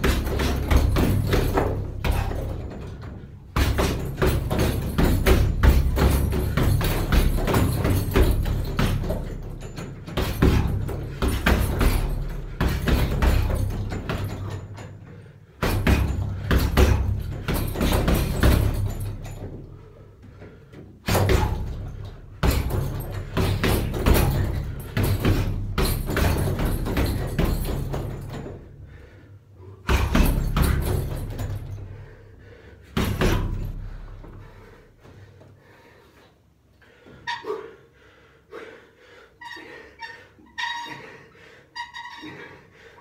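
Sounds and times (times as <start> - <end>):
punches thudding on heavy bag: 0.0 - 14.9, 15.6 - 19.8, 21.0 - 28.8, 29.8 - 32.1, 32.8 - 34.6.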